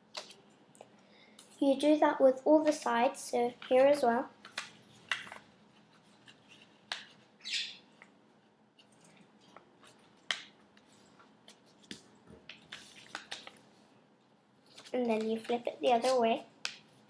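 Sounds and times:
budgerigars chirping: 7.4s - 7.8s
paper being folded: 8.8s - 13.7s, 14.6s - 16.9s.

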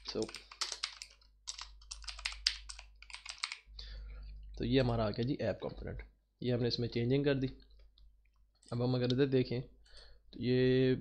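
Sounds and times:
computer keyboard typing: 0.0s - 3.7s.

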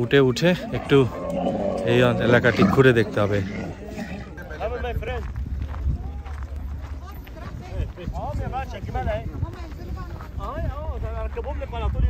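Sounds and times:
people talking: 0.0s - 3.6s
wind rumble on microphone: 3.1s - 12.0s.

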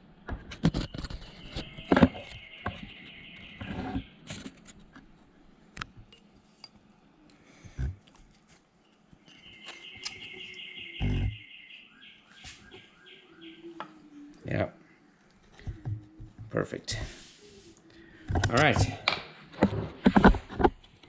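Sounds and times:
bird trilling: 9.3s - 15.1s.

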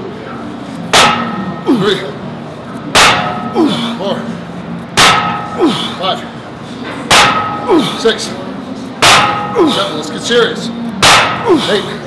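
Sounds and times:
person grunting: 1.7s - 2.0s, 3.5s - 4.0s, 5.5s - 6.0s, 9.6s - 10.0s, 11.4s - 11.9s.

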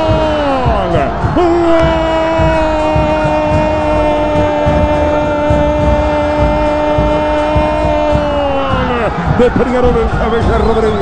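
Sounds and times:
commentator's long goal cry: 0.0s - 9.3s.

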